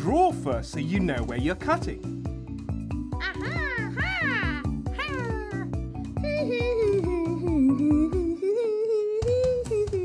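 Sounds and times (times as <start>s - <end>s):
bouncy children's music: 0.0s - 10.0s
hummed tune: 6.2s - 10.0s.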